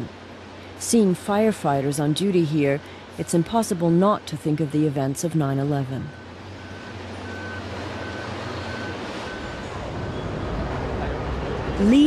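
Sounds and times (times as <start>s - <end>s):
diesel engine idling: 1.3s - 12.0s
reversing alarm beeping: 3.2s - 10.8s.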